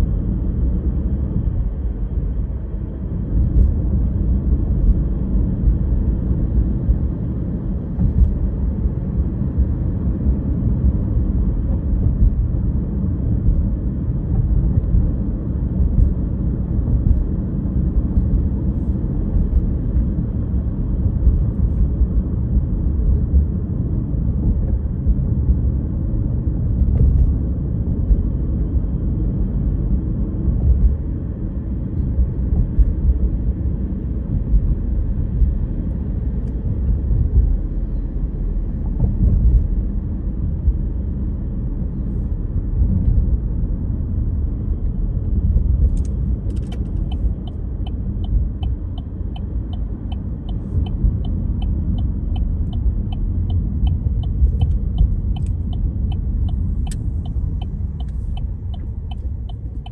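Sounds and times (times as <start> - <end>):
car engine: 0.0 - 59.9
tyre and road noise: 30.5 - 59.9.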